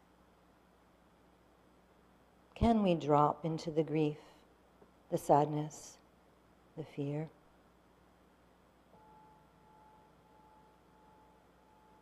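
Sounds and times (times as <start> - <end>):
soft steady ringing tone: 8.9 - 12.0.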